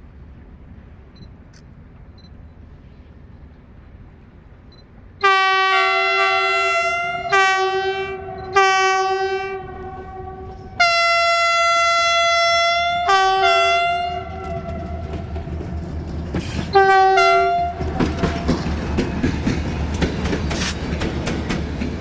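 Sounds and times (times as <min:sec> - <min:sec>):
train rumble: 0:00.0 - 0:22.0
locomotive horn blasts: 0:05.2 - 0:15.3, 0:16.7 - 0:18.6.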